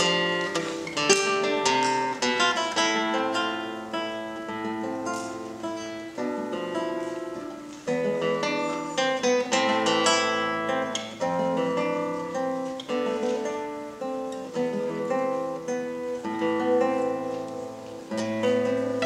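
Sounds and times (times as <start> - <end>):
classical guitar fingerstyle: 0.0 - 19.0.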